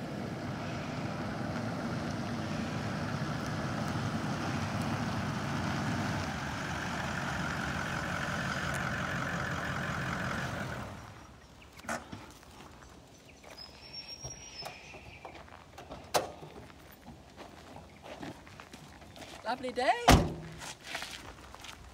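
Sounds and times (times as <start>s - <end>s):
faint engine whine: 0.0s - 12.1s
vehicle engine rumbling: 0.0s - 13.1s, 13.7s - 19.2s.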